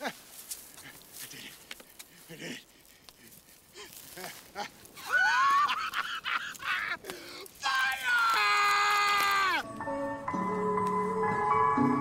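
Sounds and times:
breathy sounds: 0.7 - 5.1, 7.0 - 7.6
man yelping: 7.6 - 9.6.

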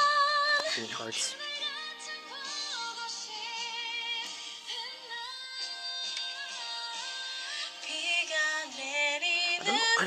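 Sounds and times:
woman singing over music: 0.0 - 10.0.

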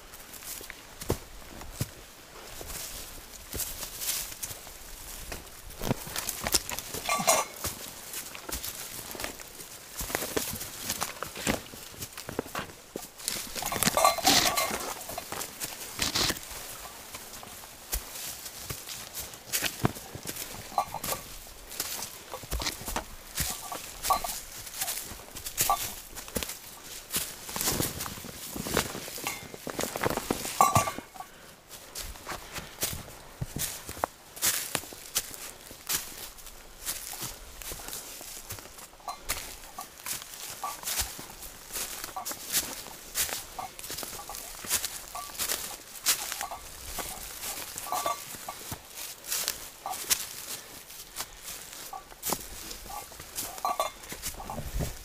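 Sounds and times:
backpacks and brush rustling: 0.0 - 55.0
boot footsteps on forest trail: 0.0 - 55.0.

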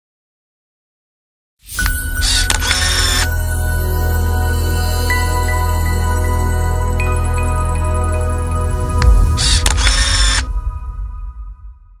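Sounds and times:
ambient synth chords: 1.9 - 12.0
deep bass swell: 3.4 - 12.0.

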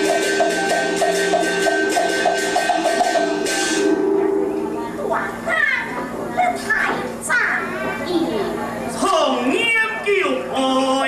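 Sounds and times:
high-pitched operatic stage dialogue: 3.4 - 8.1.

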